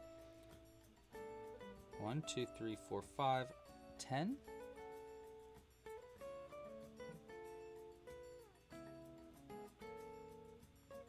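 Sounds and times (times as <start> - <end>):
plucked guitar music: 0.0 - 11.0.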